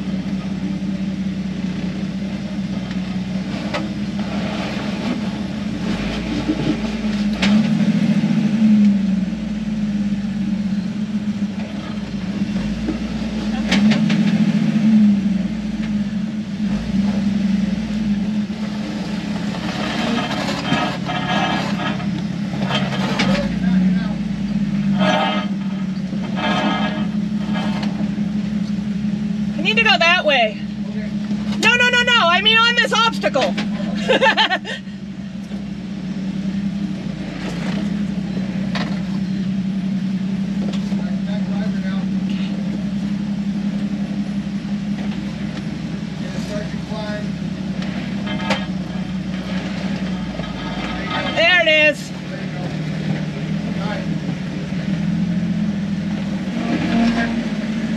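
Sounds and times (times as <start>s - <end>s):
engine running at low revs: 0.0s - 57.9s.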